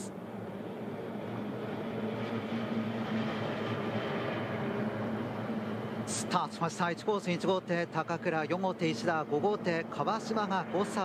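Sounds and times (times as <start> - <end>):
outboard motors droning: 0.0 - 11.0.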